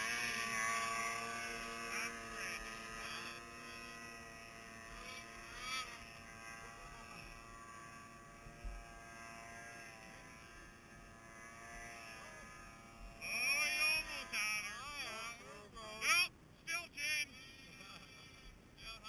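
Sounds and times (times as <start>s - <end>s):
snowmobile engine droning: 0.0s - 19.0s.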